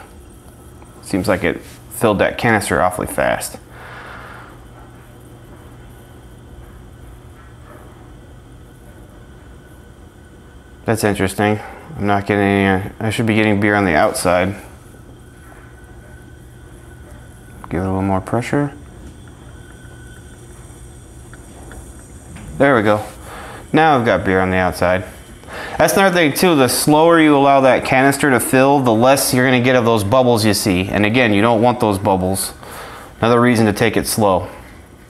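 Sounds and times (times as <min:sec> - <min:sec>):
low hum with faint hiss: 0:00.0 - 0:35.0.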